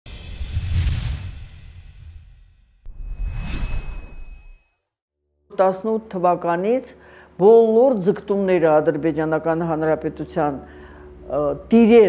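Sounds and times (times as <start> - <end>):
whoosh sound effect: 2.9 - 4.6.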